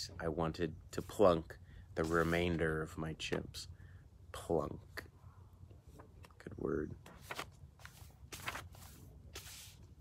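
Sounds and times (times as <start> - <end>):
paper pages rustling: 2.0 - 2.6, 7.0 - 9.9.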